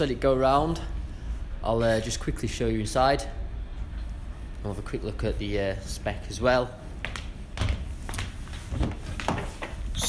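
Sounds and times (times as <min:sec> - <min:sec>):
footsteps: 0:06.8 - 0:10.0.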